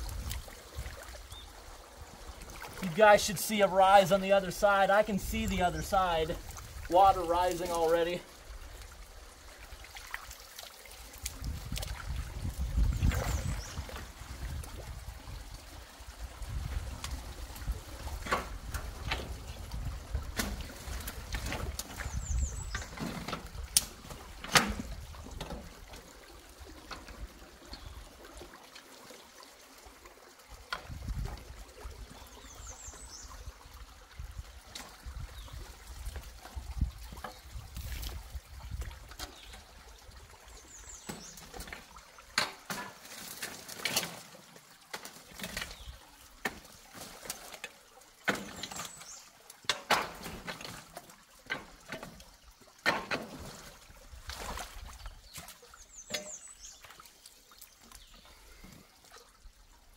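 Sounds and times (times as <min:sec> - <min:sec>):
water sloshing and trickling: 0:00.0 - 0:59.9.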